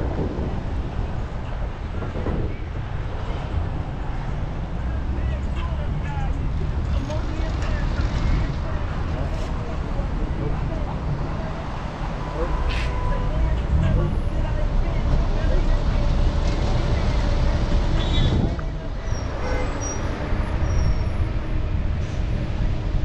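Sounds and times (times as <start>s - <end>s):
city road traffic: 0.0s - 23.0s.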